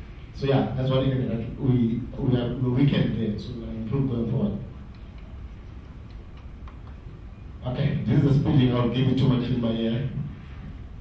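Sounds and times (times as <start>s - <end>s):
steady low hum: 0.0s - 11.0s
faint clicks: 4.9s - 7.0s.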